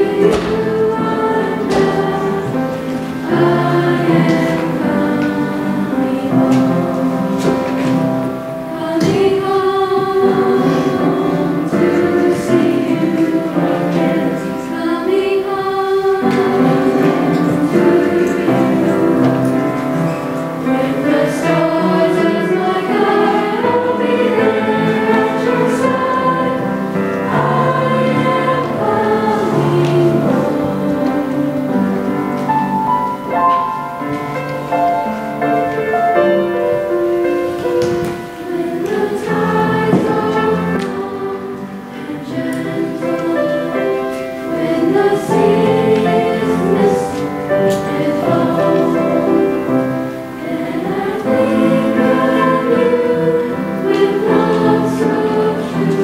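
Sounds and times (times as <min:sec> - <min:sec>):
choir of young voices singing: 0:00.0 - 0:56.0.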